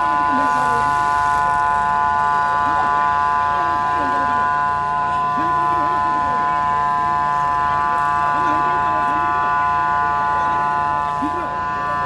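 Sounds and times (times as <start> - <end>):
murmur of crowd voices: 0.0 - 12.0
turbine engine whine: 0.0 - 12.0.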